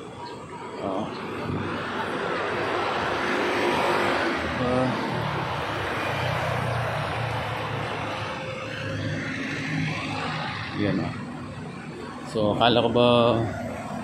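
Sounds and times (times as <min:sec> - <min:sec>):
cars passing: 0:00.0 - 0:14.0.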